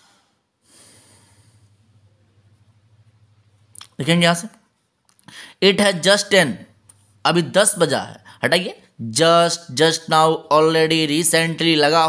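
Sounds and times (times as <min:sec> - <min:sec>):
person breathing: 0:00.0 - 0:02.0, 0:05.2 - 0:05.6
steady low hum: 0:01.0 - 0:04.2.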